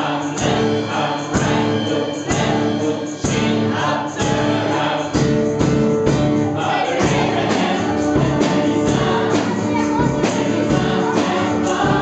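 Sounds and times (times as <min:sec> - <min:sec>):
voices singing upbeat song: 0:00.0 - 0:12.0.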